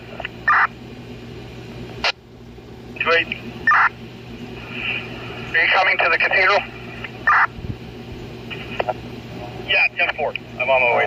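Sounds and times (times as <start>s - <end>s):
radio channel hiss and hum: 0.0s - 11.0s
radio crackle: 4.6s - 7.5s, 8.5s - 9.0s, 9.7s - 11.0s
police radio voice: 5.5s - 6.7s.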